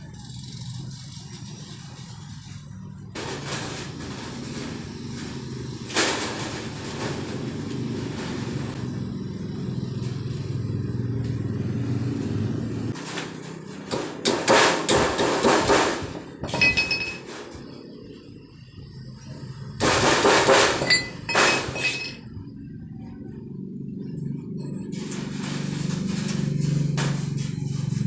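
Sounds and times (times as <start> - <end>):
rapid rattling knocks of metal sheet: 0.6 - 9.0, 12.9 - 17.8, 19.8 - 22.1, 24.2 - 28.0
short metallic ring: 16.5 - 17.3, 20.8 - 22.2
low engine-like rumble: 20.9 - 28.0.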